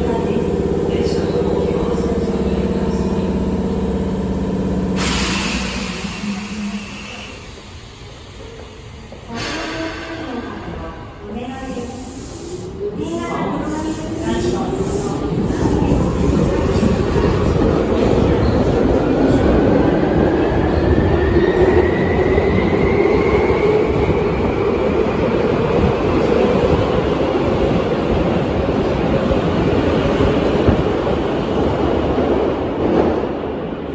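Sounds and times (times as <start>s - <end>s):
electric train motor whine: 0.0s - 7.0s
wheels rumbling on rail: 0.0s - 33.9s.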